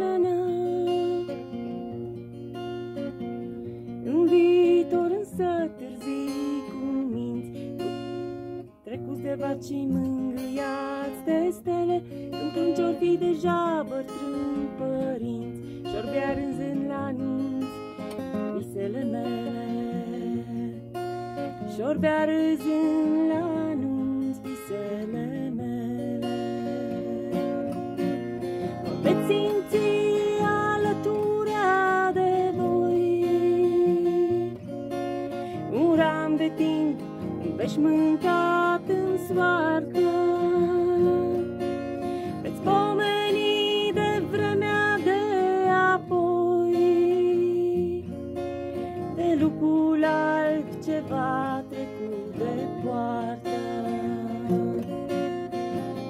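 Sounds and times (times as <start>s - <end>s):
acoustic guitar strumming: 0.0s - 56.0s
woman singing: 0.0s - 56.0s.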